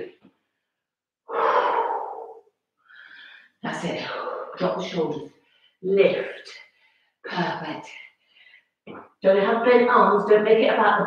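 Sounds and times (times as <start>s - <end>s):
woman breathing heavily: 1.3s - 4.6s.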